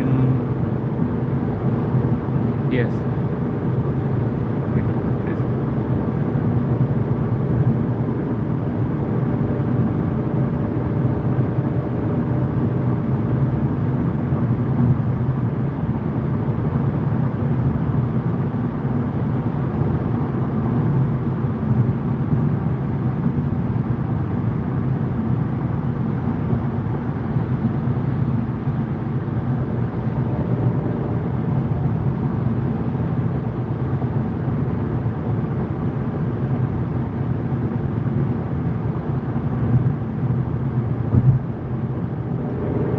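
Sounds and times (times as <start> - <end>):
car road and engine noise: 0.0 - 42.9
car bump: 41.1 - 41.5.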